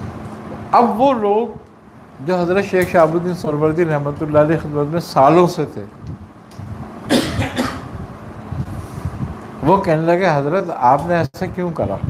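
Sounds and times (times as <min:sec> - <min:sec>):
man coughing: 0:07.1 - 0:08.0.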